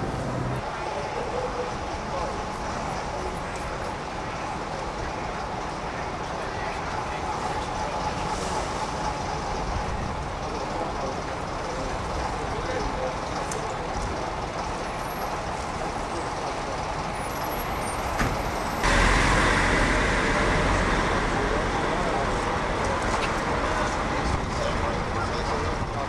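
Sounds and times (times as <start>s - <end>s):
coach engines running: 0.0s - 26.0s
street and crowd noise: 0.0s - 26.0s.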